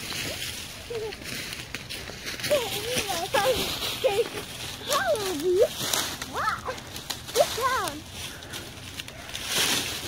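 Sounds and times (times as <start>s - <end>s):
footsteps crunching through dry leaves: 0.0s - 10.0s.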